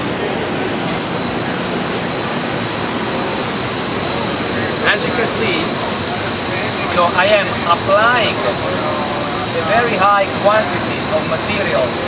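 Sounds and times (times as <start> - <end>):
high-pitched whines: 0.0 - 12.0.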